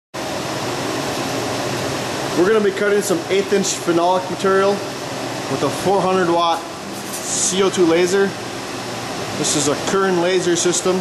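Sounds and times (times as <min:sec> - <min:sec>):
laser cutter air rush: 0:00.8 - 0:11.0.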